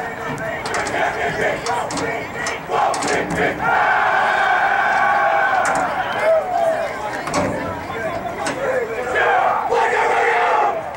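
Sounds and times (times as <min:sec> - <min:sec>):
young men chanting and shouting: 0:00.0 - 0:10.9.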